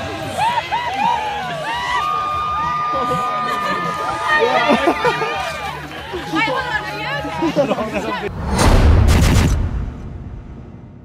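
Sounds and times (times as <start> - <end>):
deep booming impact: 8.3 - 11.0
low rumble: 8.3 - 11.0.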